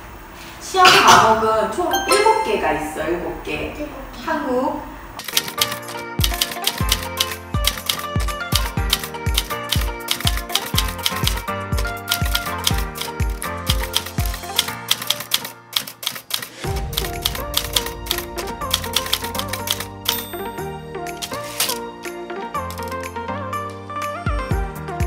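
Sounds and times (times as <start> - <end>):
typewriter key clicks: 5.2 - 20.3, 22.6 - 23.0
music with thumping beat: 6.2 - 14.6, 16.5 - 20.6.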